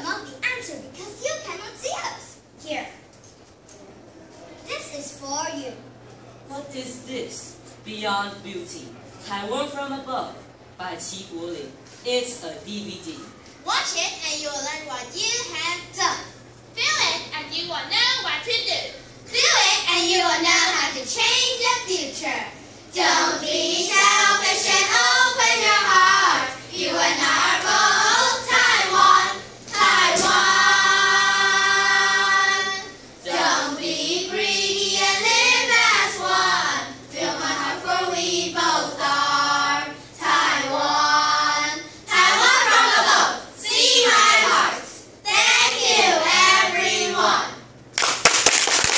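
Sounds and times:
children singing in unison: 0:23.0 - 0:43.4.

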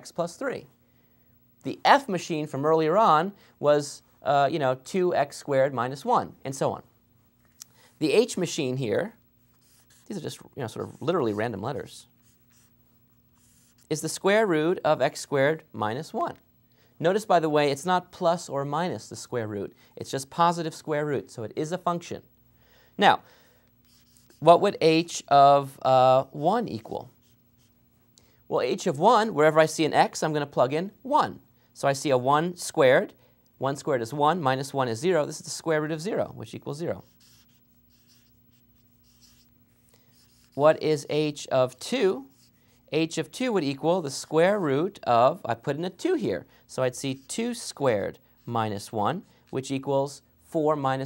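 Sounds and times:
faint low hum: 0:00.0 - 0:51.0
marker pen scratching on paper: 0:09.4 - 0:11.6, 0:12.2 - 0:14.0, 0:23.8 - 0:24.8, 0:26.8 - 0:27.8, 0:36.9 - 0:41.1, 0:42.2 - 0:42.6, 0:47.1 - 0:48.6.

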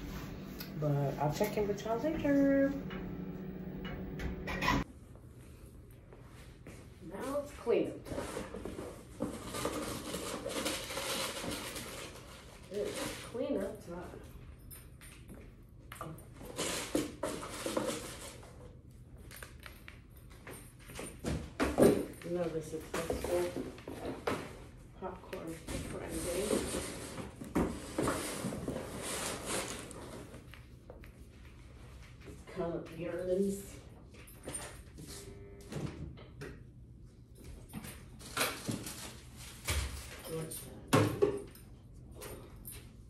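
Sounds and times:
woman talking: 0:00.6 - 0:02.9, 0:07.0 - 0:08.3, 0:12.7 - 0:14.2, 0:22.2 - 0:23.8, 0:25.0 - 0:26.8, 0:32.5 - 0:33.8, 0:40.2 - 0:41.0.

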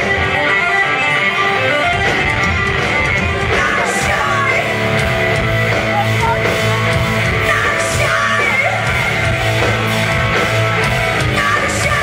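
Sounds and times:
live rock band playing: 0:00.0 - 0:12.0
woman singing and yelling: 0:07.4 - 0:09.2, 0:11.3 - 0:12.0.

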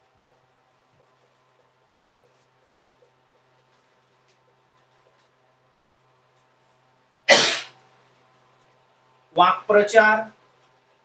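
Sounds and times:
man sneezing: 0:07.3 - 0:07.7.

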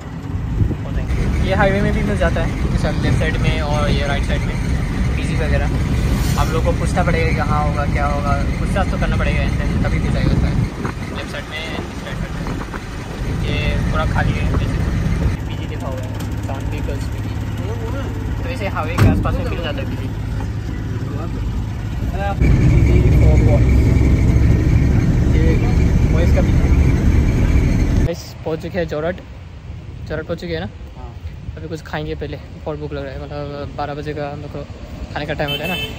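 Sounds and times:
van engine and road noise: 0:00.0 - 0:35.9
steady whine: 0:21.1 - 0:28.1.

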